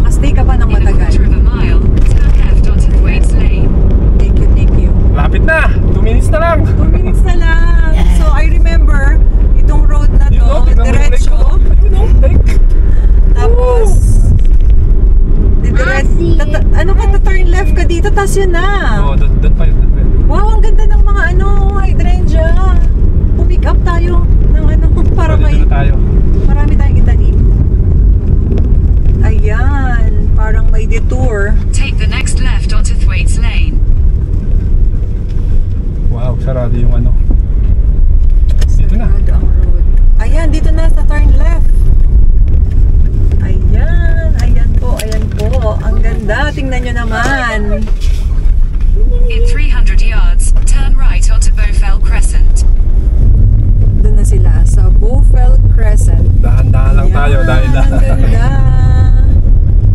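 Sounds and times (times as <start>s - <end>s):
people talking: 0.0s - 12.6s, 13.3s - 14.4s, 15.6s - 27.4s, 29.2s - 33.8s, 36.1s - 37.3s, 38.6s - 41.8s, 43.4s - 48.0s, 48.9s - 52.6s, 54.0s - 59.4s
car road and engine rumble: 0.0s - 59.9s.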